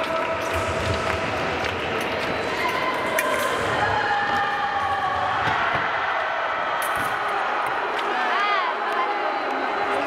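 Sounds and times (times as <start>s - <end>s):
crowd and room noise: 0.0s - 10.0s.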